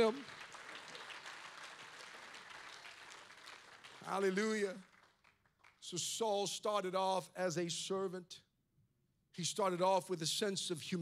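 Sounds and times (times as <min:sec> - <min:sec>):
distant congregation applause: 0:00.0 - 0:06.0.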